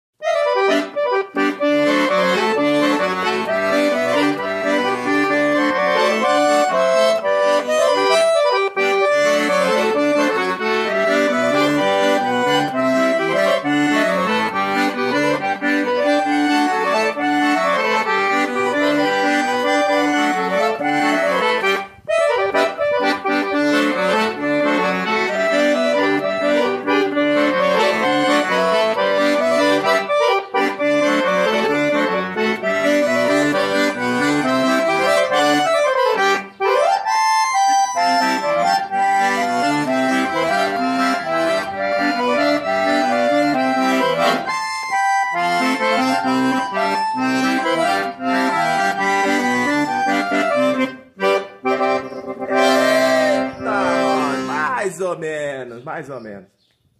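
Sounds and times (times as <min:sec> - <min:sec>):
accordion playing folk melody: 0:00.2 - 0:55.7.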